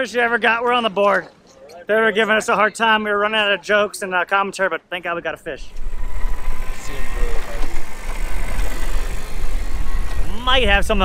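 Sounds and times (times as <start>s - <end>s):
faint voices: 5.4s - 11.0s
wind buffeting microphone: 5.4s - 11.0s
wind and sea hiss: 5.6s - 11.0s.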